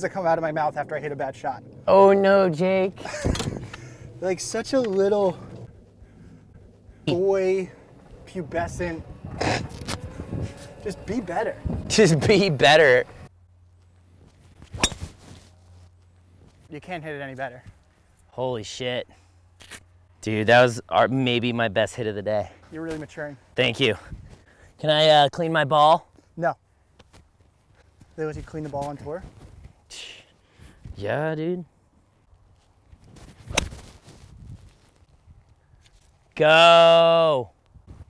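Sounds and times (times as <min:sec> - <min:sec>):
golf club striking ball: 0:14.7 - 0:15.1, 0:33.5 - 0:33.8.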